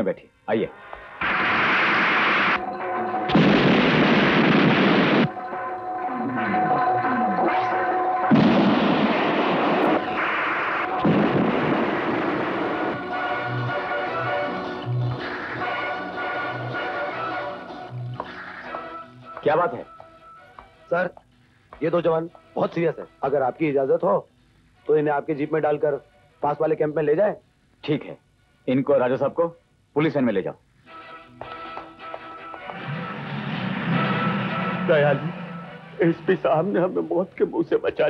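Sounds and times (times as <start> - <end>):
explosion blasts: 1.2 - 5.4, 8.2 - 17.1, 32.7 - 36.6
dramatic background music: 2.3 - 20.5, 31.0 - 37.6.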